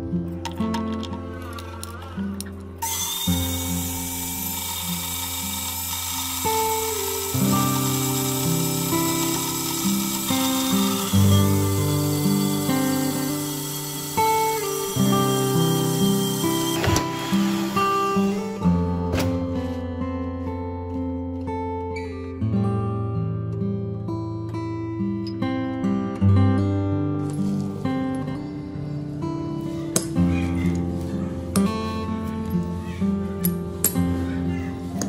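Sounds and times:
acoustic guitar music: 0.0 - 35.0
band saw cutting steel: 1.3 - 18.6.

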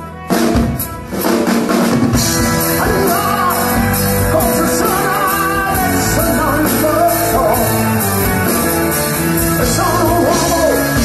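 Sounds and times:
bass: 0.0 - 11.0
drum kit: 0.0 - 11.0
electric guitars: 0.0 - 11.0
keyboards: 0.0 - 11.0.

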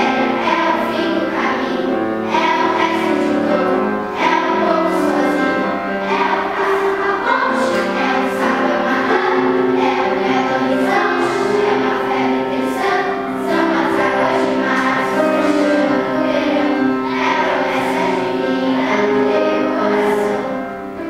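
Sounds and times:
children's choir singing: 0.0 - 21.0
piano: 0.0 - 21.0.

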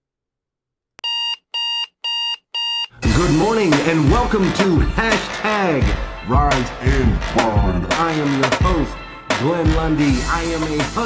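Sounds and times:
alarm clock short beeps: 1.0 - 2.9.

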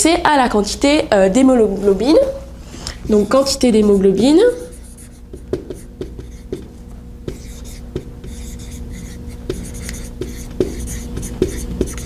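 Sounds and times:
marker squeaking on whiteboard: 3.1 - 3.8, 4.5 - 12.0.

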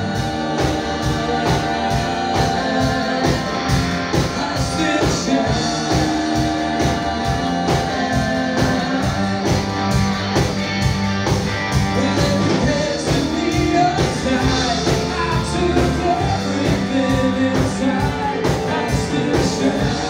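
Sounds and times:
drum kit steady beat: 0.0 - 20.0
live rock band playing: 0.0 - 20.0.

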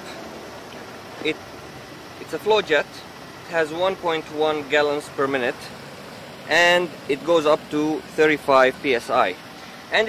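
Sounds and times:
outdoor background hiss: 0.0 - 10.0.

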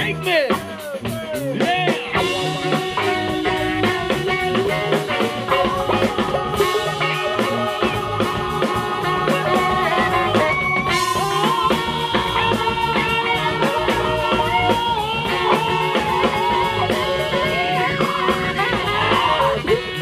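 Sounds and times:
funk band playing: 0.0 - 20.0.

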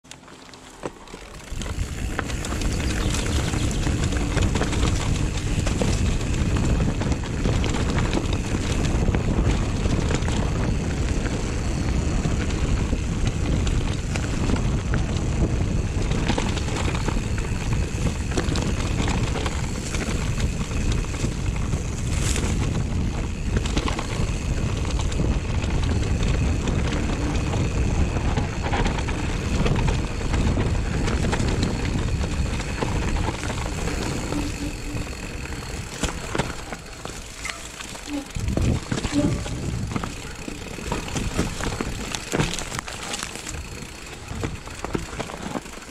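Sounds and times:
bike rattling and knocking: 0.0 - 45.9
bike tyre noise: 0.0 - 45.9
wind rushing over microphone: 1.4 - 45.2.

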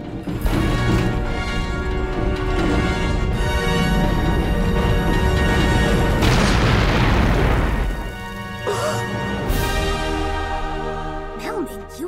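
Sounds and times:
orchestral music: 0.0 - 12.0
cartoon boom and crash: 6.2 - 8.0.

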